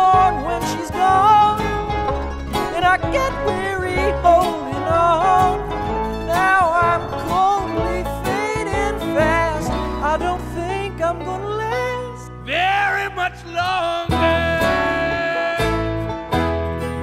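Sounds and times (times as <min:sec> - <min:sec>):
bluegrass string band playing: 0:00.0 - 0:17.0.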